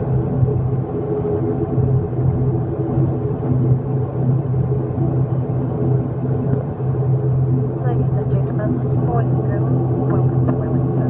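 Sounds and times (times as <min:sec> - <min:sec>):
turboprop engines droning: 0:00.0 - 0:11.0.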